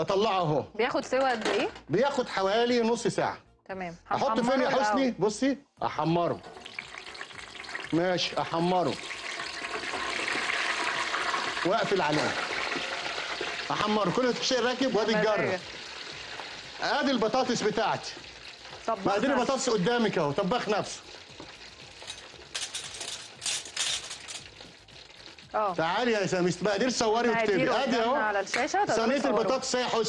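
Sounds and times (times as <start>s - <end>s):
bubbling sizzle of deep frying: 6.2s - 30.0s.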